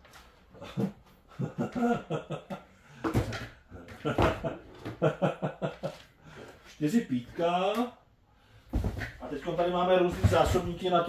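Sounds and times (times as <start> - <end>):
person chuckling: 0.6 - 2.6.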